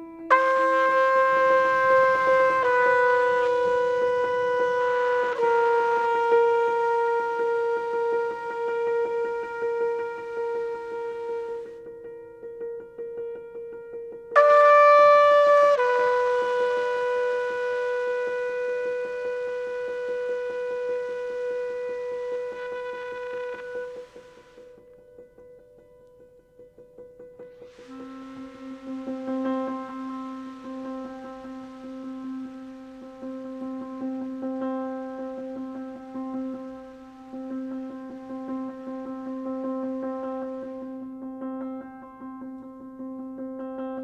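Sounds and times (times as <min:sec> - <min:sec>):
held horn note: 0:00.3 - 0:11.8, 0:14.4 - 0:24.6, 0:27.7 - 0:41.0.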